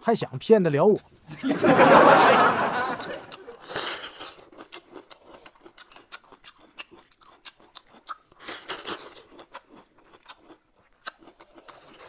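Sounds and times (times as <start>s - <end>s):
food being chewed and crunched: 3.3s - 12.0s.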